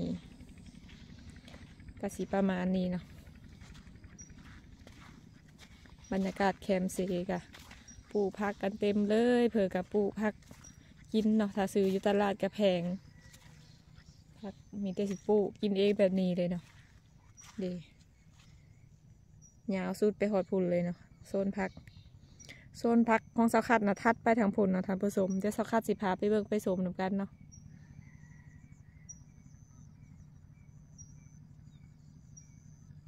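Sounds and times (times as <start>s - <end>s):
woman's voice: 0.0s - 0.3s, 2.0s - 3.2s, 6.1s - 13.1s, 14.4s - 16.8s, 17.5s - 17.9s, 19.7s - 21.8s, 22.4s - 27.3s
faint outdoor background: 0.0s - 33.0s.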